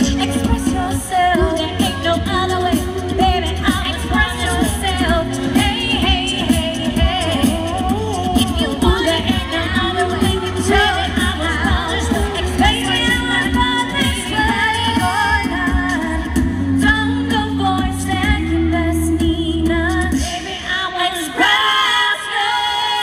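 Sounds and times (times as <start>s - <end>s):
bass line and beat: 0.0s - 20.5s
vocal group singing: 0.0s - 23.0s
woman singing pop song: 0.0s - 23.0s.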